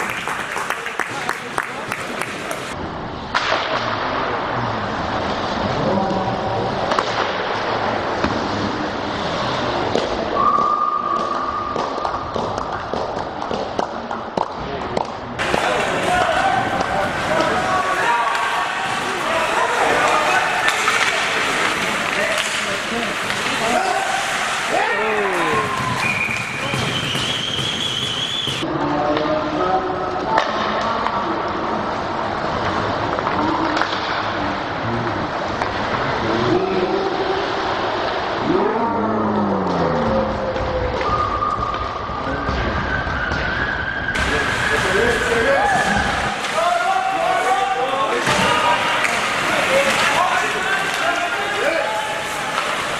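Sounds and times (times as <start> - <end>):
sticks and puck clacking: 9.8 - 28.6, 32.0 - 34.4, 35.4 - 36.0, 44.2 - 52.9
skates scraping on ice: 15.4 - 28.6, 44.2 - 52.9
spectators shouting: 15.4 - 28.6, 43.5 - 52.9.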